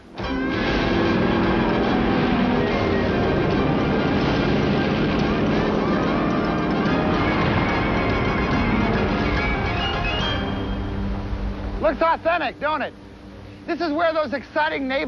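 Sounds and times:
film music: 0:00.1 - 0:11.9.

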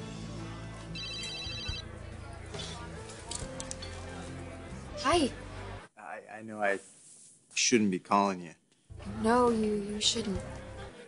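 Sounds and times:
soft background music: 0:00.0 - 0:11.0
phone ringing with high trill: 0:01.0 - 0:01.8.

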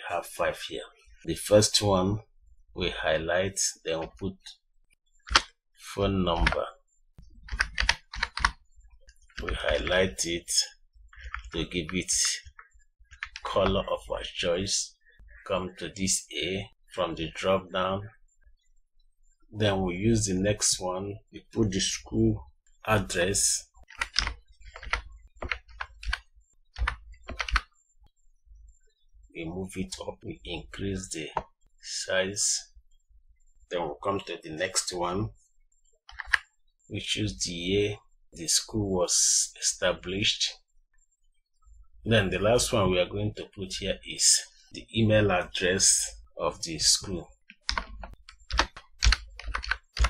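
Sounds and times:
computer keyboard typing: 0:05.3 - 0:05.5, 0:06.3 - 0:06.7, 0:07.4 - 0:10.2, 0:11.1 - 0:13.9, 0:23.2 - 0:27.7, 0:36.1 - 0:36.5, 0:47.0 - 0:50.0.

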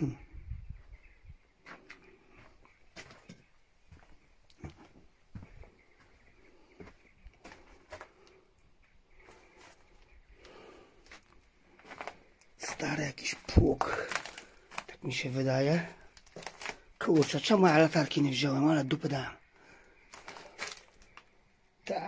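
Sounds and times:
footsteps on rubble and stone: 0:01.6 - 0:08.3, 0:09.2 - 0:18.4, 0:20.1 - 0:21.3.

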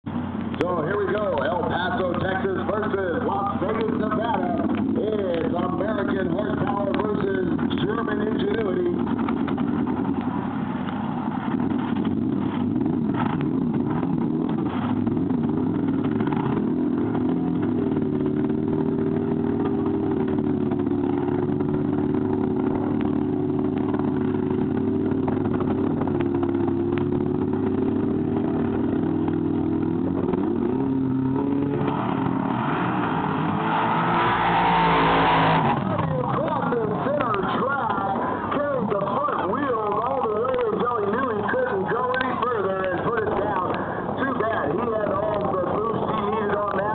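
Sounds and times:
crowd noise: 0:00.0 - 0:11.6, 0:27.7 - 0:46.9.

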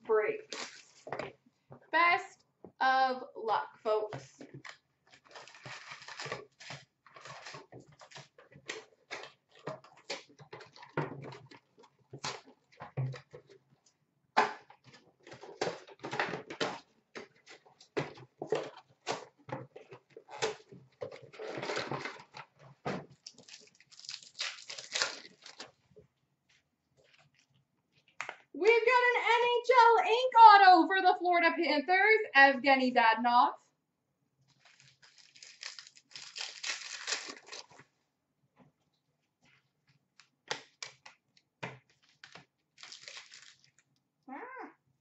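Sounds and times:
card packs rustling: 0:04.5 - 0:11.0, 0:15.2 - 0:25.8, 0:34.5 - 0:37.8, 0:42.0 - 0:43.8
foil card packs crinkling: 0:04.6 - 0:11.0, 0:23.1 - 0:25.8, 0:34.5 - 0:37.9, 0:41.9 - 0:43.9.

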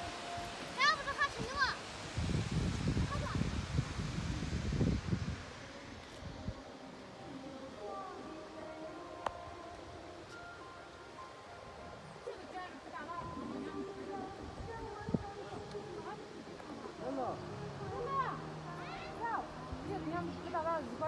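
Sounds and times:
wind rumble on microphone: 0:01.2 - 0:06.7, 0:13.1 - 0:17.0.

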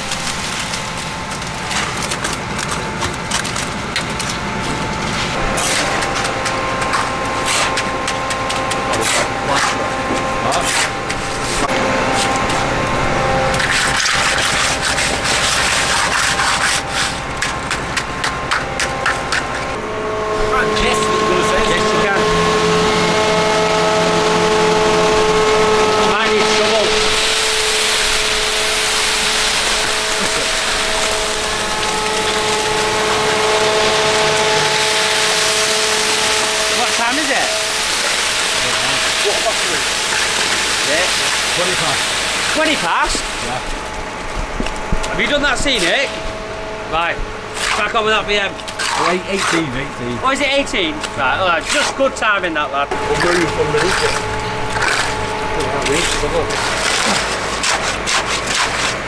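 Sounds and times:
wet concrete rushing down chute: 0:00.0 - 0:19.8, 0:24.3 - 0:43.9, 0:47.0 - 0:59.0
concrete mixer truck engine: 0:00.0 - 0:59.0.

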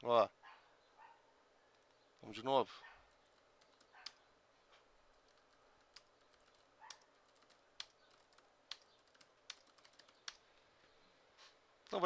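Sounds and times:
faint keyboard typing: 0:01.7 - 0:02.4, 0:03.1 - 0:10.6.

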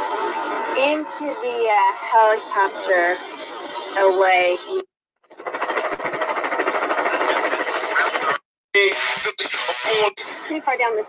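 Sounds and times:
fluttering mechanical engine noise: 0:05.2 - 0:08.4.

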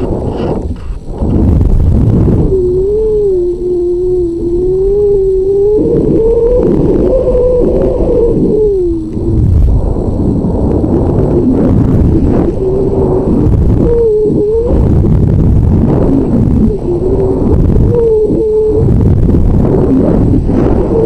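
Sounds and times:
moaning wind whistle: 0:00.0 - 0:21.0
wind buffeting rumble: 0:00.0 - 0:21.0.

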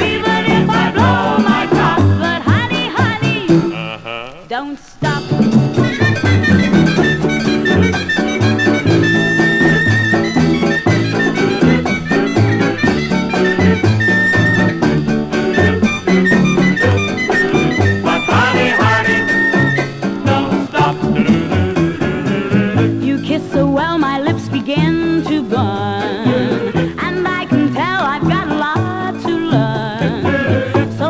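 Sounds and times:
swing band playing from record: 0:00.0 - 0:31.0.

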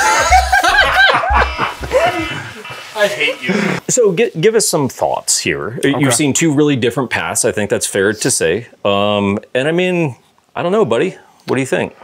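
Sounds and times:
men laughing: 0:00.0 - 0:03.8.

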